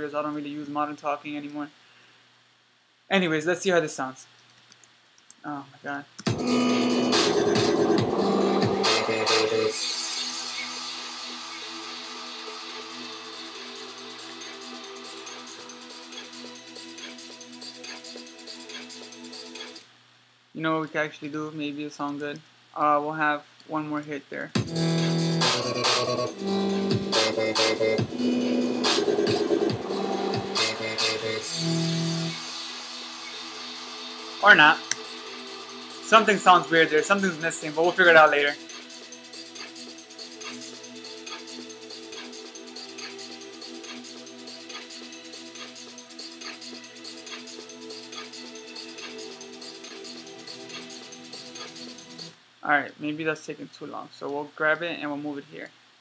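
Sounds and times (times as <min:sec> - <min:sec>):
drum hits: 0:06.3 - 0:09.5, 0:24.6 - 0:31.2
sustained synth chords: 0:06.3 - 0:10.5, 0:24.6 - 0:37.4
dubstep with heavy bass and drums: 0:06.3 - 0:19.8, 0:24.6 - 0:49.3.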